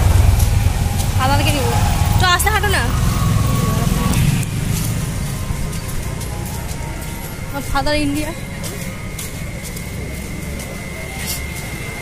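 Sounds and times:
street rumble: 0.0s - 12.0s.

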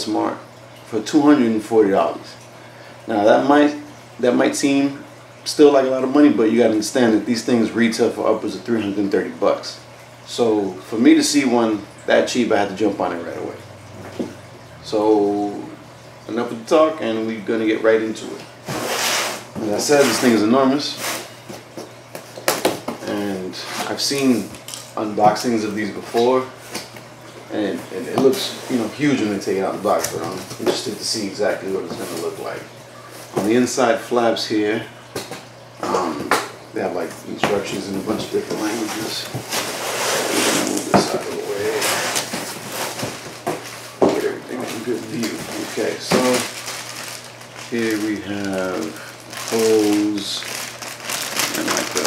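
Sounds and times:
cardboard rustling and scraping: 37.8s - 52.0s.

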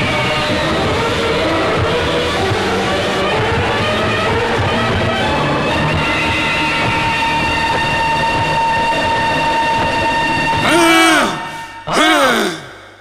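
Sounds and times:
drawn-out vocal cries: 10.6s - 13.0s.

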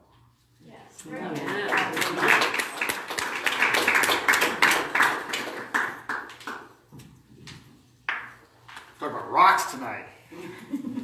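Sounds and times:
scattered hand claps: 1.4s - 6.8s.

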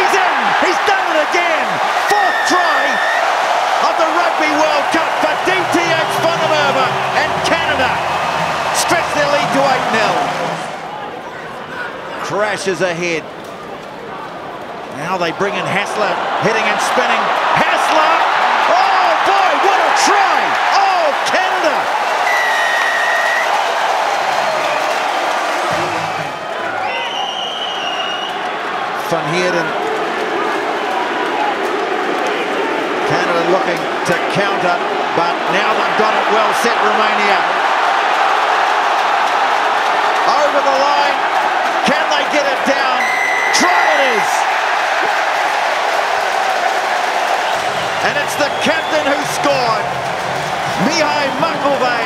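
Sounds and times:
crowd cheering and clapping: 0.0s - 52.0s
high whistle-like tone: 22.3s - 23.5s, 43.0s - 43.6s.

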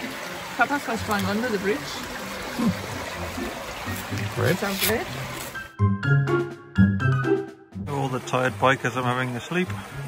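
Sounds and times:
creek water flowing: 0.0s - 5.7s, 7.9s - 10.0s.

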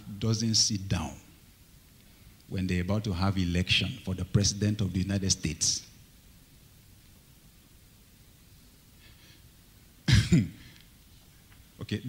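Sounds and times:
man clearing his throat: 10.1s - 10.8s.

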